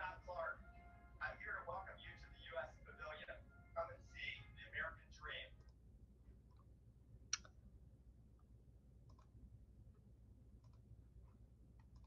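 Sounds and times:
computer mouse clicks: 6.4 - 6.7, 8.4 - 10.0, 10.6 - 12.0.

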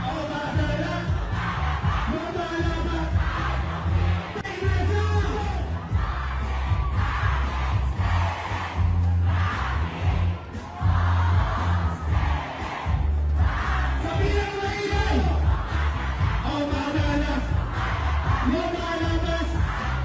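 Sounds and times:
person rapping into a microphone: 0.0 - 9.0, 13.4 - 20.0
crowd shouting along: 0.0 - 20.0
heavy bass beat: 0.0 - 20.0.

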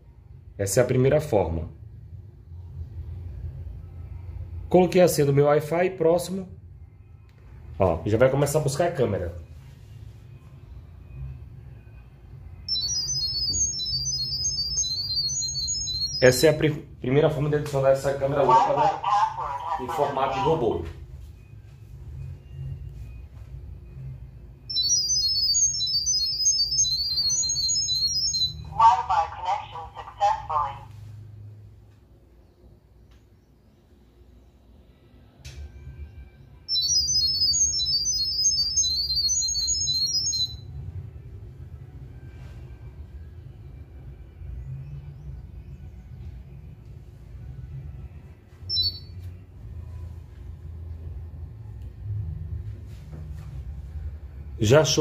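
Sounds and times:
rapid high-pitched beeps: 12.6 - 16.6, 24.6 - 30.0, 36.7 - 40.7.

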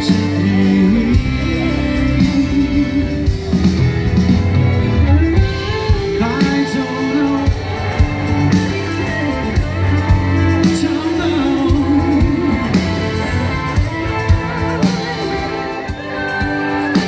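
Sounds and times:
rock band and orchestra playing: 0.0 - 17.0.

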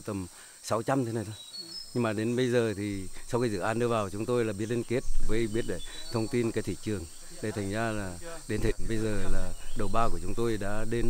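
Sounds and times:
insects chirring: 0.0 - 11.0
man speaking: 2.0 - 11.0.

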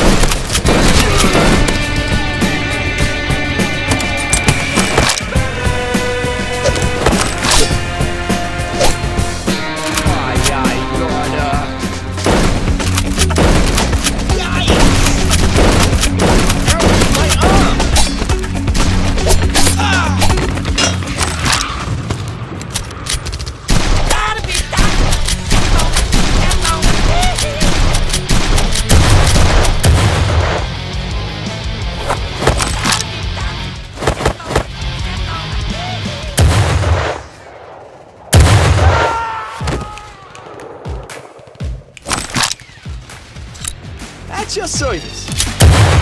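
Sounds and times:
background music: 0.0 - 37.7, 38.3 - 46.0.

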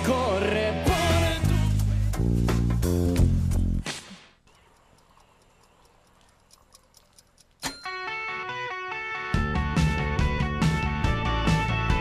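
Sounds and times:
toaster timer ticking: 4.5 - 8.2.

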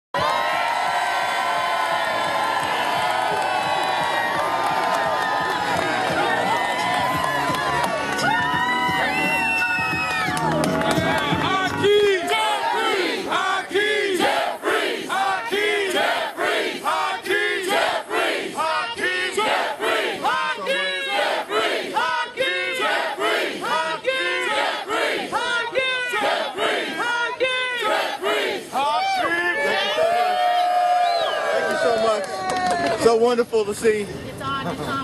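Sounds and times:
crowd chanting in unison: 12.1 - 28.8.

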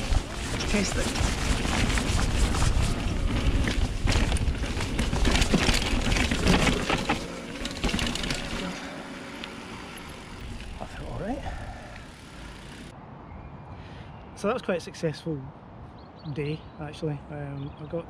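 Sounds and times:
bike clattering and rattling: 0.0 - 12.9
mountain bike rushing over dirt: 0.0 - 12.9
tyres rolling on tarmac: 0.0 - 12.9.

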